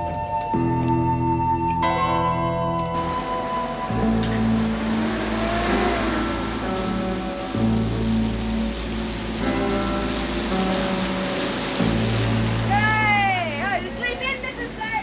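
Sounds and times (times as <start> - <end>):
soft background music: 0.0 - 15.0
tyres hissing on wet road: 2.9 - 15.0
vehicle engine running: 3.0 - 14.8.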